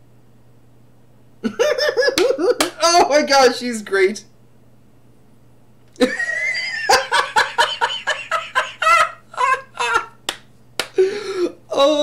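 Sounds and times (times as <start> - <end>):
man laughing: 1.4 - 3.1, 6.0 - 10.2.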